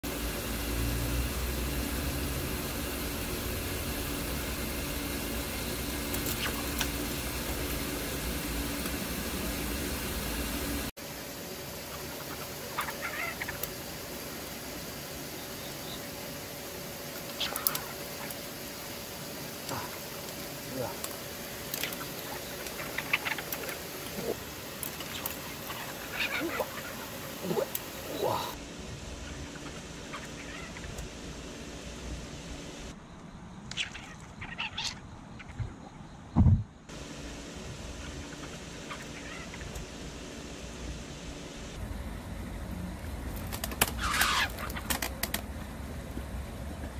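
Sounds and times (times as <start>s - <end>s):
steady low hum: 0.0s - 46.9s
sharp clicks and squeaks: 6.1s - 7.0s, 43.5s - 45.4s.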